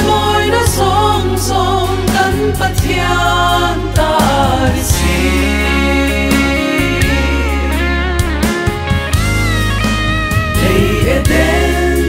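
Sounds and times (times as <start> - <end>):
women singing gospel in harmony: 0.0 - 7.6, 10.5 - 12.0
instrumental backing with bass line: 0.0 - 12.0.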